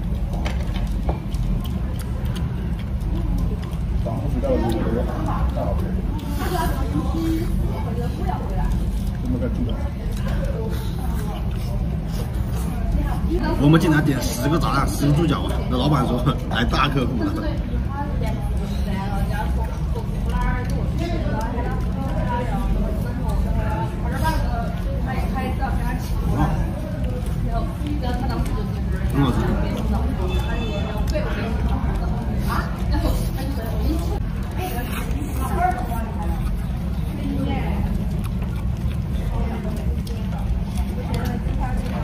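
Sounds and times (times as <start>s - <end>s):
voices talking: 1.2s - 42.0s.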